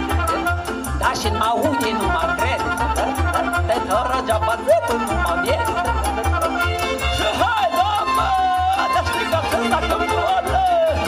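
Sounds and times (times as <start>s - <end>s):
amplified folk band music: 0.0s - 11.0s.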